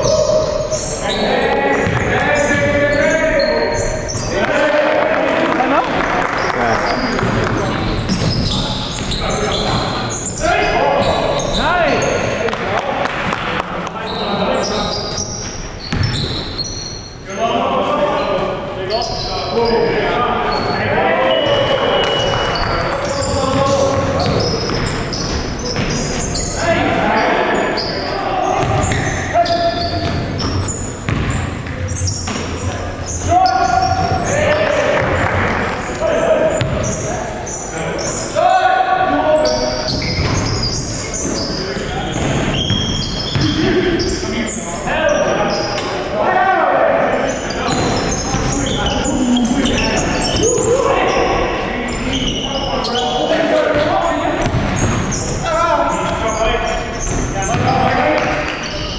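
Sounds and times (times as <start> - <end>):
players shouting: 0.0 - 12.6, 32.6 - 40.5, 44.8 - 58.8
basketball bouncing on hardwood: 31.1 - 31.4, 36.6 - 36.8.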